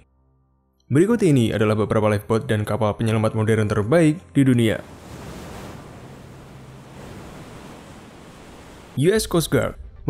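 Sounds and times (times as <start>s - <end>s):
rough sea rushing: 4.7s - 9.5s
wind: 4.8s - 9.0s.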